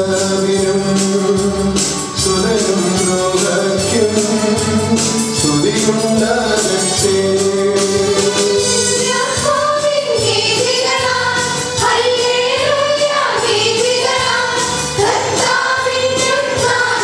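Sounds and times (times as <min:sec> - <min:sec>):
instrumental accompaniment: 0:00.0 - 0:17.0
women's choir singing a hymn: 0:08.7 - 0:17.0.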